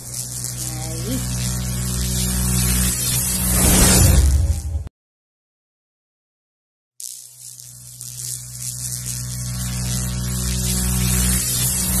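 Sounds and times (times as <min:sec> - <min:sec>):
low drone with hiss: 0:00.0 - 0:04.0, 0:07.8 - 0:12.0.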